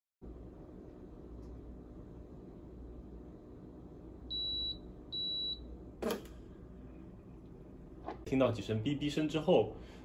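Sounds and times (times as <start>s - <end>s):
espresso machine high beeps: 4.3s - 5.7s.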